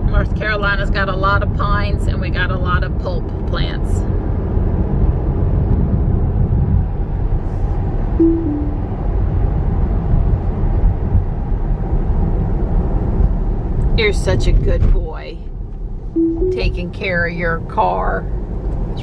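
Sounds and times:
road and tyre rumble in car cabin: 0.0 - 19.0
two-note falling tone: 8.2 - 9.0, 16.2 - 17.0.

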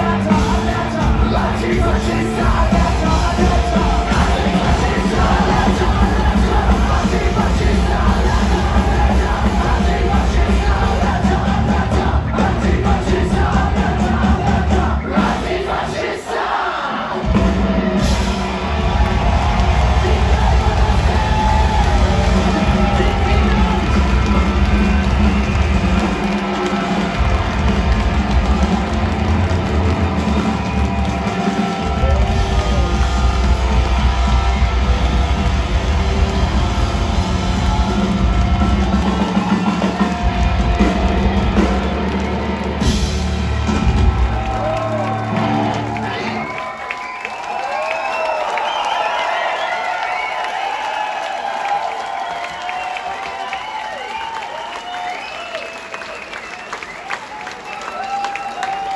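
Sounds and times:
punk rock band playing live: 0.0 - 16.2, 16.9 - 46.6
crowd cheering and shouting: 0.0 - 58.9.

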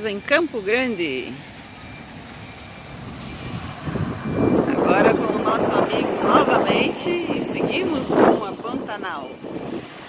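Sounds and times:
road and engine noise: 0.0 - 10.0.

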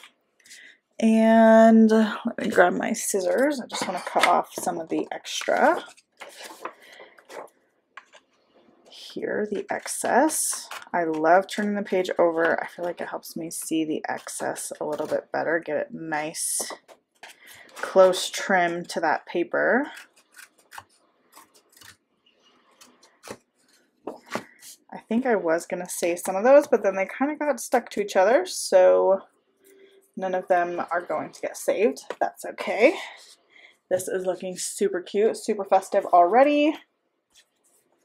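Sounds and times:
paper page rustling: 3.2 - 8.4
scissors snipping paper: 9.5 - 12.0, 19.9 - 22.0.

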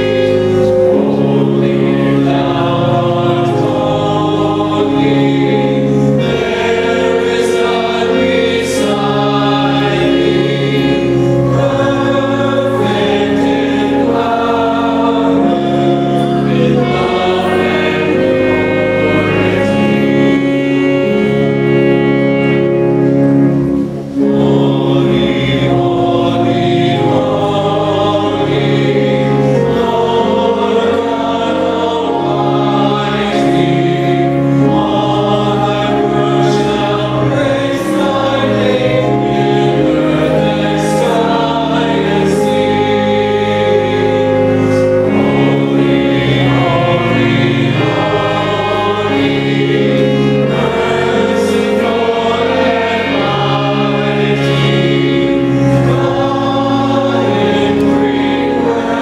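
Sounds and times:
church choir singing a hymn: 0.0 - 59.0
instrumental accompaniment: 0.0 - 59.0.

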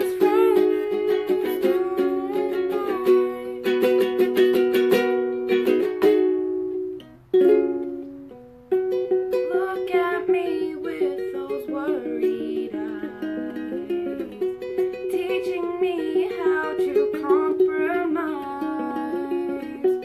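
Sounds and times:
woman singing: 0.0 - 4.4, 9.3 - 20.0
ukulele strumming: 0.0 - 20.0.

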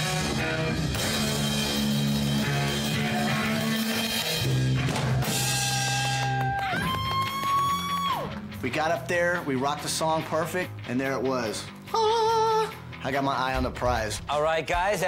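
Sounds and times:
electric guitars: 0.0 - 13.0
drum kit: 0.0 - 15.0.

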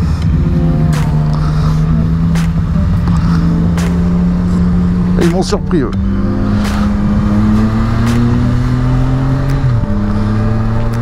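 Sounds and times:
motorcycle engine accelerating: 0.0 - 11.0.

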